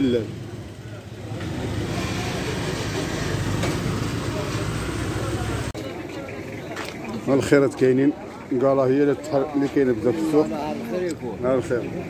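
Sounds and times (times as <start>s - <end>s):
market noise: 0.0s - 12.0s.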